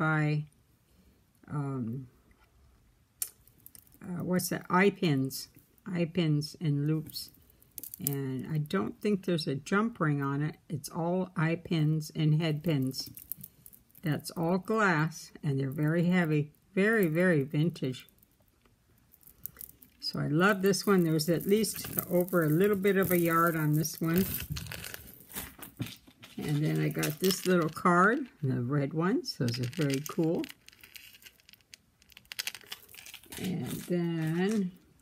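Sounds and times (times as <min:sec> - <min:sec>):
glass beads clicking: 0:03.2 - 0:04.0, 0:07.2 - 0:08.2, 0:12.6 - 0:14.4, 0:15.7 - 0:25.5, 0:26.3 - 0:28.4, 0:29.4 - 0:35.0.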